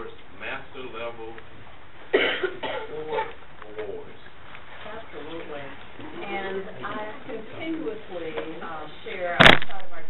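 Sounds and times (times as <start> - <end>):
person coughing: 2.1 - 3.2
people talking: 2.2 - 10.0.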